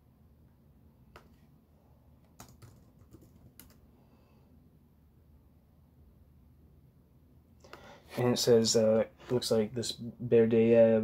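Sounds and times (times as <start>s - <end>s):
low room hum: 0.0s - 11.0s
computer keyboard keystrokes: 2.3s - 3.8s.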